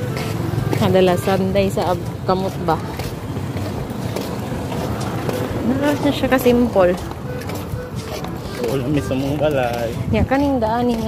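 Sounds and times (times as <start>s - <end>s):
wind buffeting microphone: 1.7s - 11.0s.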